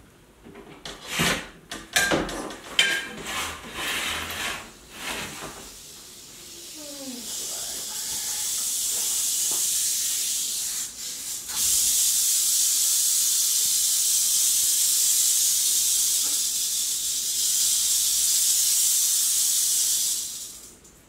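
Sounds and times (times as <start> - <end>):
rattlesnake rattling: 6.6 - 20.7.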